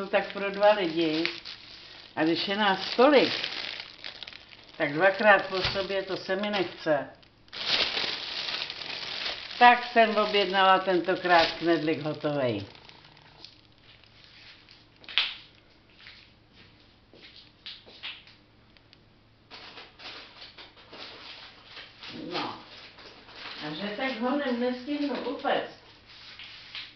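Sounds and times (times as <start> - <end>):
plastic packaging crinkling: 0.0 - 15.6, 19.5 - 25.5.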